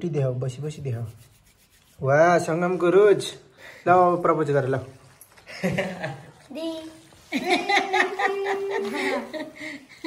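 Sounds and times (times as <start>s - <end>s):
light rubbing rustle: 0.6s - 3.3s.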